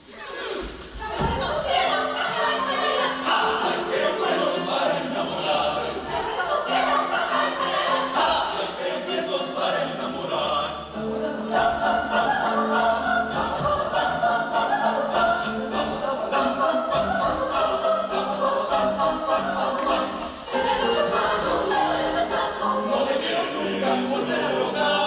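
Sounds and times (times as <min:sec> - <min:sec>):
choir singing in harmony: 0:00.0 - 0:25.0.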